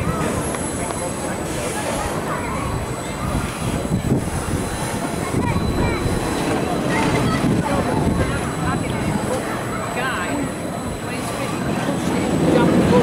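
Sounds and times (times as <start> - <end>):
roller coaster wheels rumbling on rail: 0.0 - 13.0
voices: 0.0 - 13.0.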